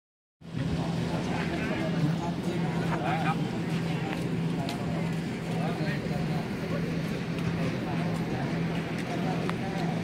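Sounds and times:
low mechanical hum: 0.4 - 10.0
people talking indistinctly: 0.5 - 10.0.

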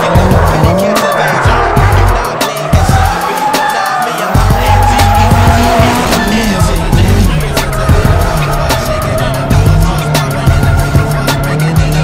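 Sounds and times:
car engine running: 0.0 - 3.2, 4.4 - 12.0
music with steady beat: 0.0 - 12.0
tyres squealing: 0.0 - 12.0.

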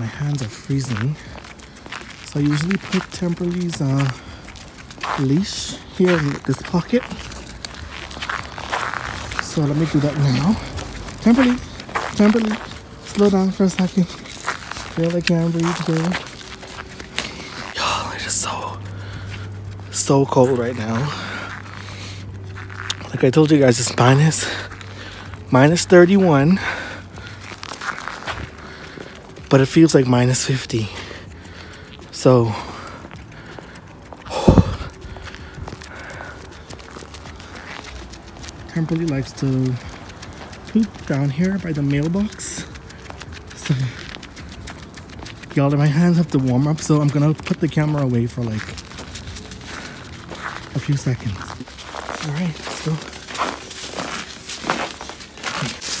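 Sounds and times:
footsteps on snow: 0.0 - 56.0.

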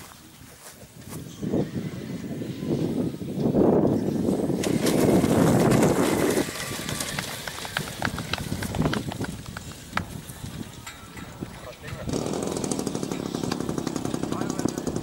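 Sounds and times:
glider rolling across grass: 4.3 - 10.8.

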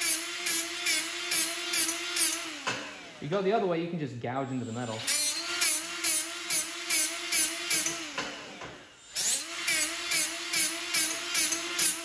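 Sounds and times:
die grinder grinding steel: 0.0 - 3.3, 4.6 - 12.0.

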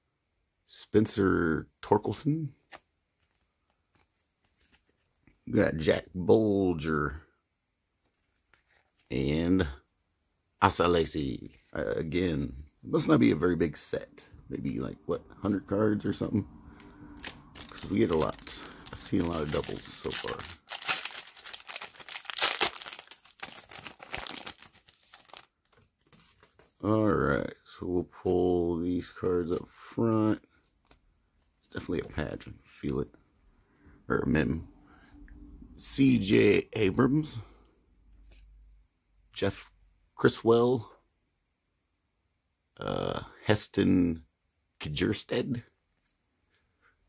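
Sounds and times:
plastic wrapper tearing and crinkling: 17.1 - 26.7.

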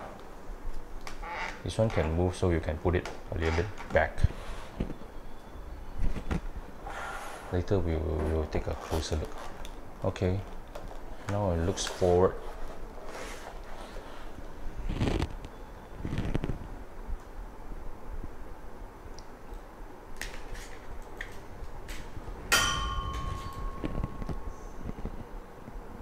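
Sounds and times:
sharp ringing clink: 22.5 - 24.5.

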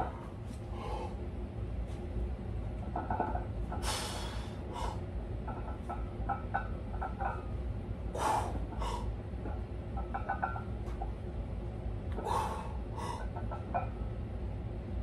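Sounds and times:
steady low hum: 0.0 - 15.0
sharp hissing breaths: 3.8 - 5.0.

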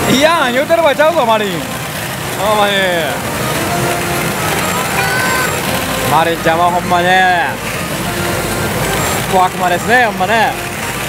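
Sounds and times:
gaming machine noise: 0.0 - 11.0
short electronic tones: 3.2 - 10.7.

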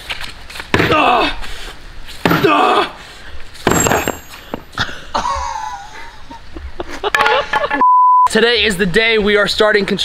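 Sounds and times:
sledgehammer striking block wall: 2.2 - 2.6, 3.6 - 4.3.

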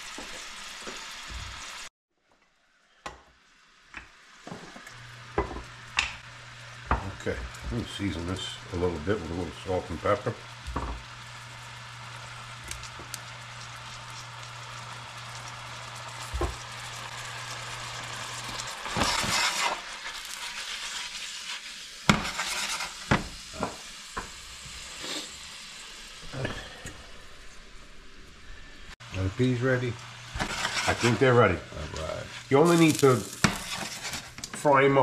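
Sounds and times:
food sizzling in a skillet: 0.0 - 1.9, 2.7 - 27.6, 28.3 - 35.0.

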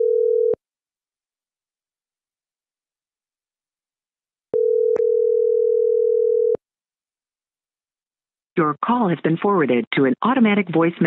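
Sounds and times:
telephone ringback tone: 0.0 - 0.6, 4.6 - 6.6.

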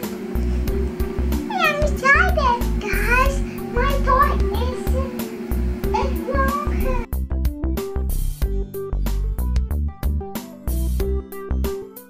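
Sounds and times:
background music with beat: 0.0 - 12.0.

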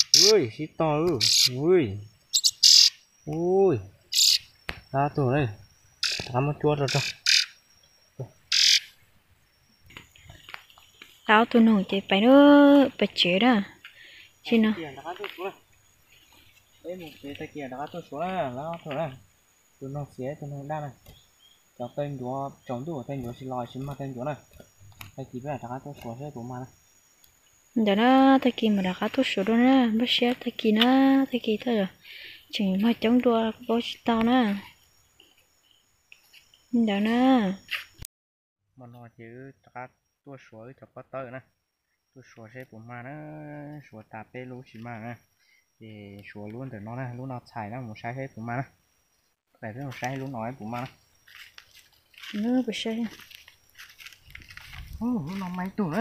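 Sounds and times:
bird harsh call: 0.0 - 0.5, 1.2 - 1.6, 2.3 - 3.0, 4.1 - 4.5, 6.0 - 7.6, 8.5 - 9.0
person speaking: 0.0 - 2.5, 14.5 - 15.6, 55.0 - 56.0
insects droning: 0.0 - 38.1, 38.7 - 56.0.

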